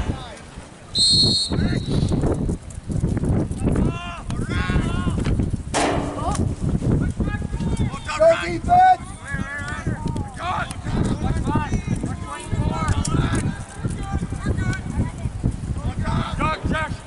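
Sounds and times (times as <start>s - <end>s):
referee's whistle blast: 0.9s - 2.2s
players and spectators shouting: 7.3s - 14.8s.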